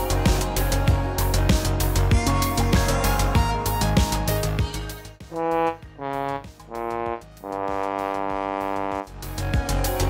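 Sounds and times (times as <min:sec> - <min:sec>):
brass notes: 0:05.2 - 0:09.2.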